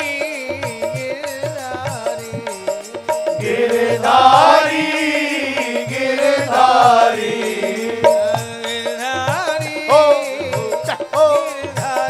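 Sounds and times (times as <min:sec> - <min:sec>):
instrumental accompaniment: 0:00.0 - 0:12.0
man singing devotional song: 0:00.0 - 0:12.0
regular drum beat: 0:00.0 - 0:12.0.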